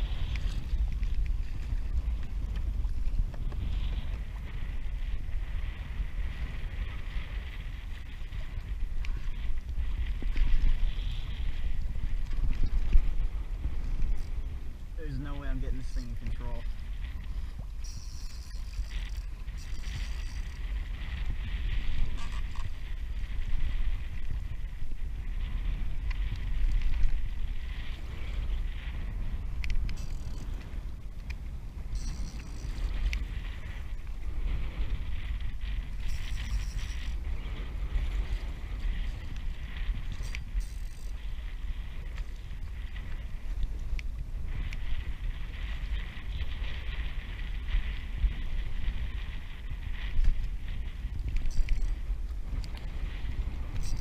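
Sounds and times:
water rushing along kayak hull: 0.0s - 54.0s
wind buffeting microphone: 0.0s - 54.0s.

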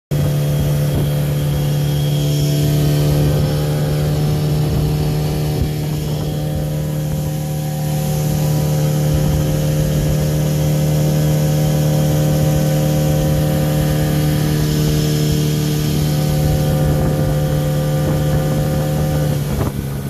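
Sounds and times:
outboard motor running: 0.1s - 20.0s
water along a hull: 0.1s - 20.0s.

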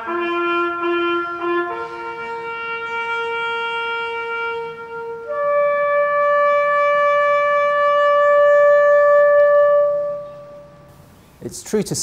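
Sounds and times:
bugle call: 0.0s - 10.9s.

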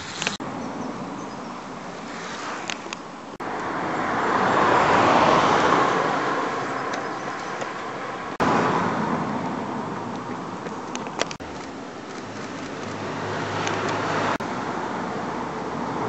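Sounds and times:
cars passing on a road: 0.0s - 16.0s.

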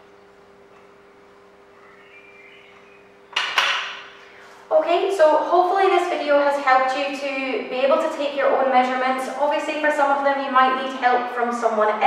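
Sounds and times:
woman speaking: 4.7s - 12.0s.

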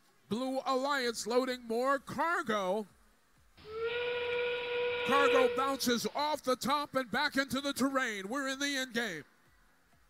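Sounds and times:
steam-train whistle over loudspeakers: 3.6s - 6.1s.

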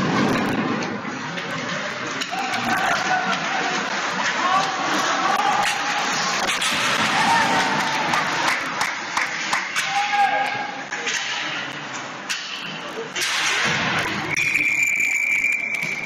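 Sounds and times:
hockey sticks and puck clacking: 0.0s - 16.0s
players shouting: 1.6s - 8.8s, 9.7s - 10.9s
referee's whistle blast: 14.3s - 16.0s.

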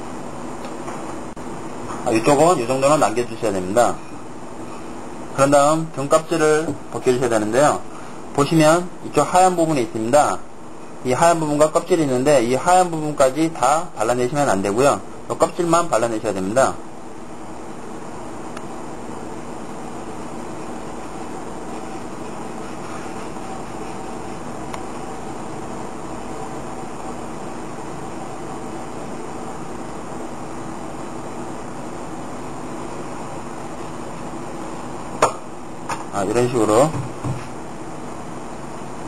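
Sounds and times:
steady machine hum: 0.0s - 39.0s.

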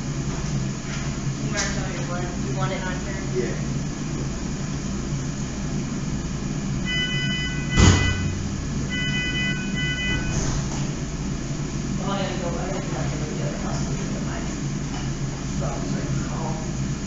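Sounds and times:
steady low hum: 0.0s - 17.0s
held multi-pitch tone: 6.8s - 10.5s
loud knock: 7.7s - 8.6s.

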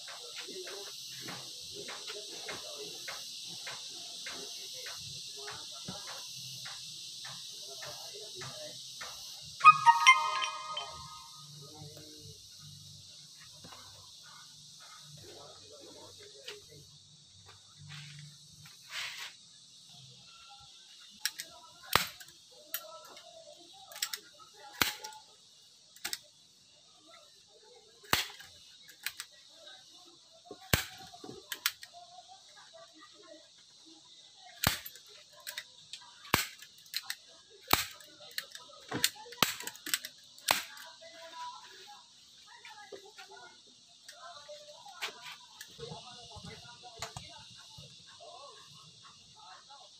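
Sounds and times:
loud ringing tone: 9.6s - 11.5s.

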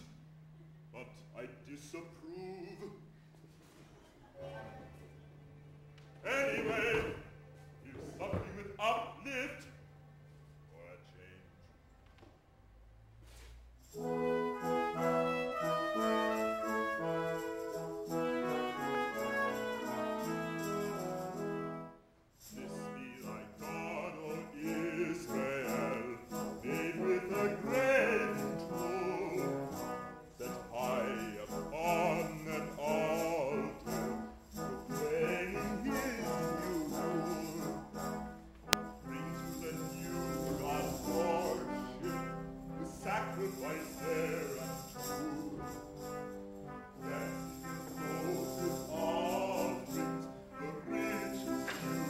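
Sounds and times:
brass sustained chords: 0.0s - 2.3s, 13.8s - 52.0s
man singing operatically: 1.0s - 3.1s, 6.2s - 9.8s, 18.3s - 21.4s, 22.4s - 52.0s.

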